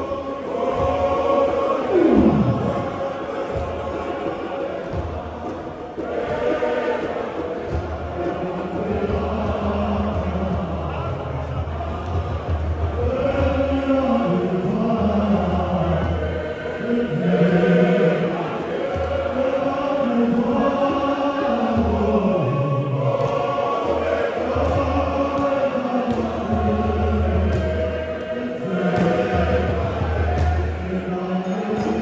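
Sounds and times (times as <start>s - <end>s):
crowd singing a hymn: 0.0s - 32.0s.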